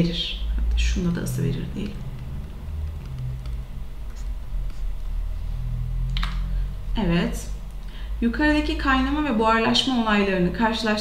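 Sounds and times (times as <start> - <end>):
low hum: 0.0 - 9.6.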